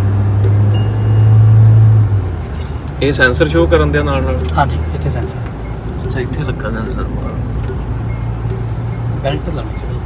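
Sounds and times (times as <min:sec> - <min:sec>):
road and wind noise in car: 0:00.0 - 0:10.0.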